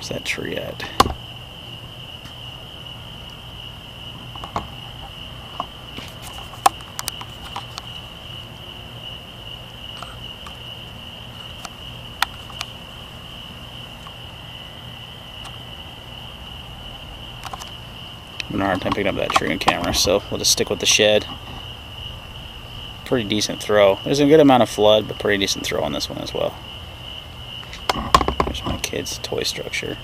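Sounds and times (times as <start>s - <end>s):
crickets trilling: 0.0s - 30.0s.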